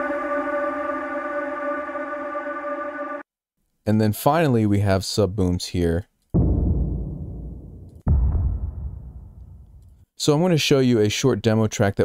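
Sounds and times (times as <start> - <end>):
deep low boom: 6.4 - 10.0.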